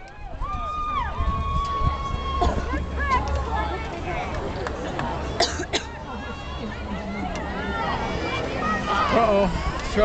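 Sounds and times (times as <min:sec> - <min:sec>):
crowd chatter: 0:00.0 - 0:10.0
person coughing: 0:05.4 - 0:05.9.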